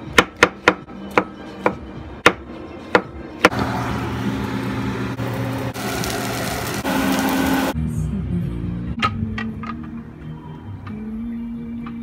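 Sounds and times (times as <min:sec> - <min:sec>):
music: 0:00.0 - 0:05.2, 0:06.0 - 0:12.0.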